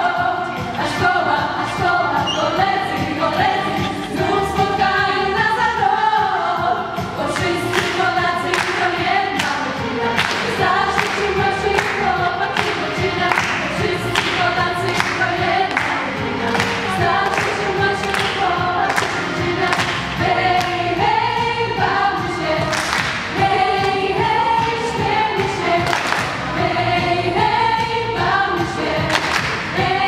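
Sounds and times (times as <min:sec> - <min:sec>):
girls' choir singing: 0:00.0 - 0:30.0
singers clapping a beat: 0:00.1 - 0:02.3, 0:03.0 - 0:30.0.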